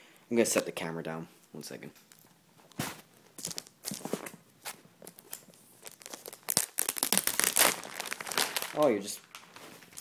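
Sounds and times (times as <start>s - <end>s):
plastic wrapping crinkling: 2.1s - 10.0s.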